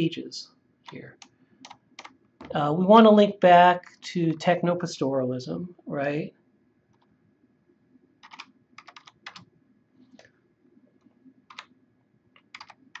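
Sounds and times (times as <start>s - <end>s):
faint keyboard typing: 0.8s - 2.6s, 8.2s - 13.0s.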